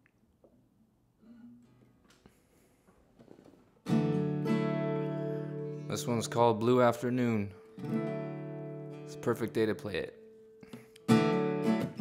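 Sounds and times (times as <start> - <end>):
strummed guitar chord: 3.9 - 7.0.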